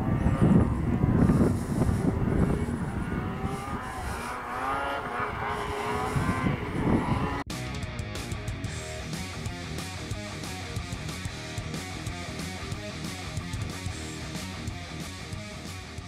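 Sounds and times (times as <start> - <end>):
snowmobile engine whining: 0.0 - 7.5.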